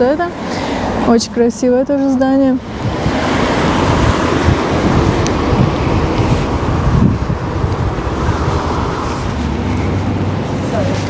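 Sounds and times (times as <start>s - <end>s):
wind buffeting microphone: 0.0s - 11.0s
car driving past: 2.6s - 11.0s.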